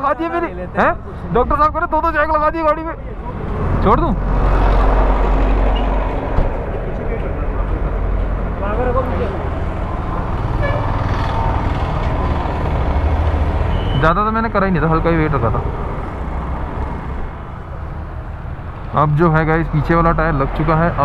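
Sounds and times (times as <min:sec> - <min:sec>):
heavy vehicle engine rumble: 0:00.0 - 0:20.9
busy street traffic: 0:00.0 - 0:21.0.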